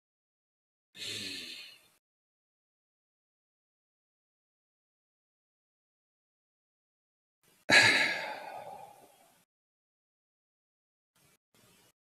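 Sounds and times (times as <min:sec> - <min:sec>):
man sighing: 0:07.7 - 0:09.1.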